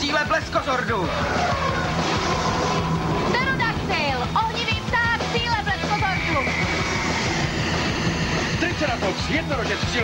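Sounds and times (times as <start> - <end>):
gliding electronic sweeps: 1.7 - 9.4
warbling electronic chirps: 5.4 - 9.1
steady electronic tone: 5.6 - 9.2.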